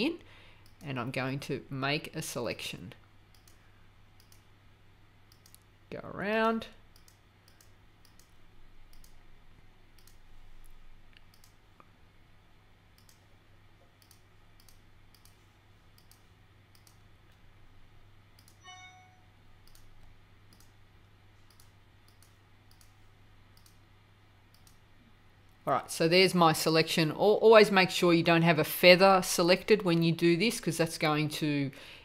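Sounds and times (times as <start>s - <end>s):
computer mouse clicks: 3.3s - 3.6s, 4.2s - 4.5s, 5.3s - 5.7s, 6.9s - 9.2s, 9.9s - 11.9s, 13.0s - 13.3s, 13.9s - 17.4s, 18.4s - 18.7s, 19.6s - 20.8s, 21.4s - 23.8s, 24.5s - 24.8s.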